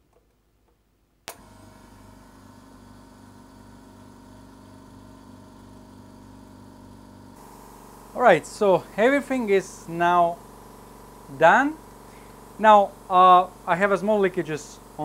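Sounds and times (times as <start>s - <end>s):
air compressor pulsing hum: 1.3s - 15.0s
faint air hiss: 7.4s - 15.0s.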